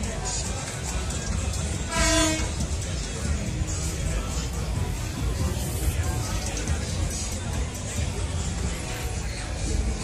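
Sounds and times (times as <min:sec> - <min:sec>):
horn toot: 0:01.8 - 0:02.8.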